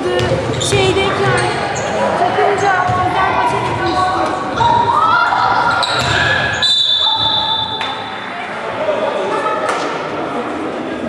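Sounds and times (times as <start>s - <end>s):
sneakers squeaking on court: 5.6s - 8.1s.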